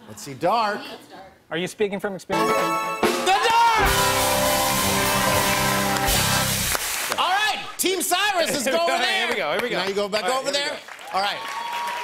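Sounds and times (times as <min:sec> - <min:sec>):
held synthesized chord: 0:02.3 - 0:06.5.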